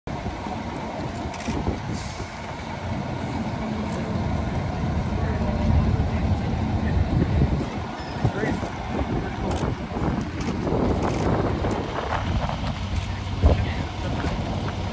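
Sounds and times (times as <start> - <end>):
diesel engine idling: 0.1 - 14.9.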